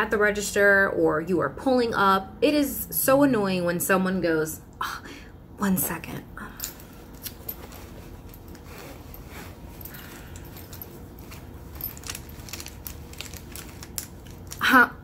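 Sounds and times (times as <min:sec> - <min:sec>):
fabric pouch rustling: 0:06.8 - 0:14.6.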